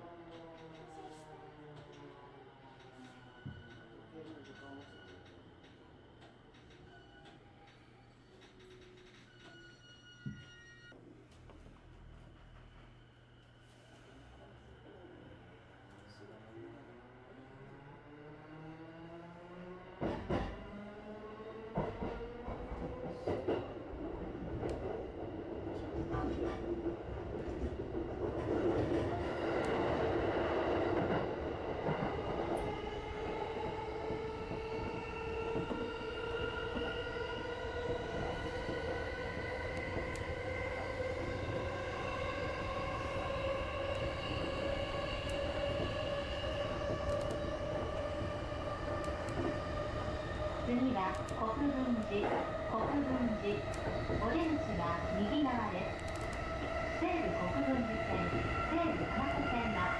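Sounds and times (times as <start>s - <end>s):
electric train motors whining: 53.6s - 59.6s.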